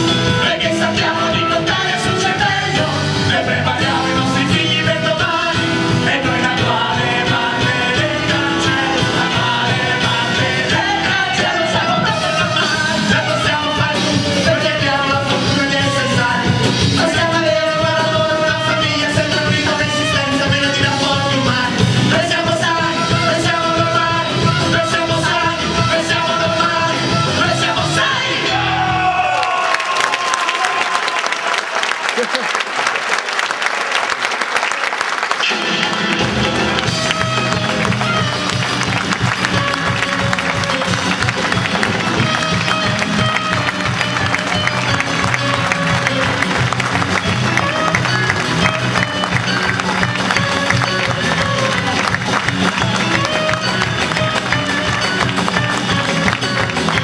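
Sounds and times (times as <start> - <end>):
live band playing: 0.0 - 29.0, 35.0 - 57.0
audience applauding: 29.0 - 57.0.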